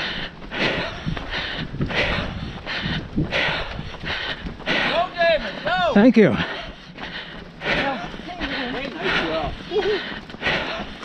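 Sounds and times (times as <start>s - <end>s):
footfalls on pavement: 0.0s - 11.0s
runner breathing: 0.0s - 11.0s.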